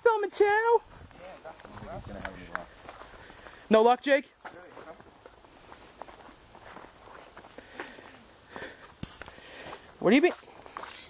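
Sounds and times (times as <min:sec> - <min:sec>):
footsteps through weeds: 0:09.0 - 0:11.0.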